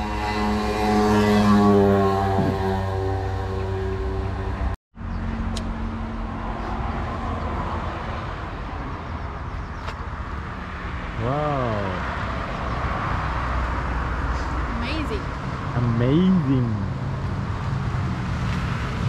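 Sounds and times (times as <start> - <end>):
road traffic noise: 0.0 - 19.0
vehicle engine passing: 0.0 - 19.0.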